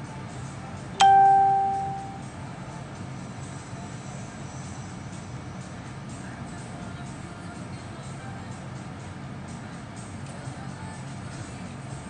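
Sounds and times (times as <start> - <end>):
faint background music: 0.0 - 12.0
loud bell-like ding: 1.0 - 2.2.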